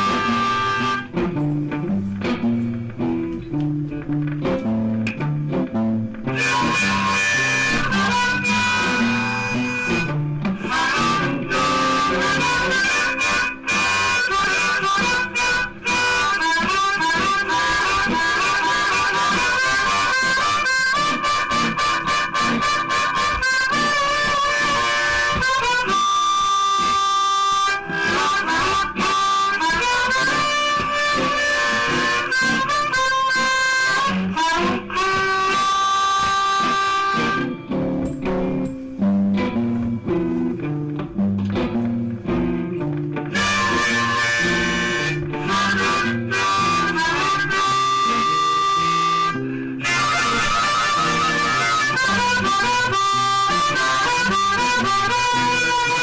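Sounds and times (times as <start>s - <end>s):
blues guitar backing track: 0.0s - 56.0s
harmonica playing blues: 0.0s - 56.0s.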